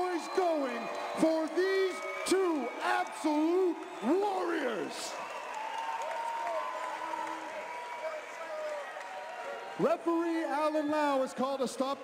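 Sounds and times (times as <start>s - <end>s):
crowd applauding and cheering: 0.0s - 12.0s.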